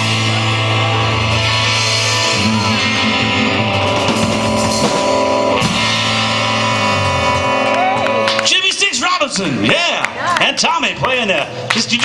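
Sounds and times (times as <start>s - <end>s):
drum kit: 0.0s - 8.5s
bass guitar: 0.0s - 12.0s
electric guitars: 0.0s - 12.0s.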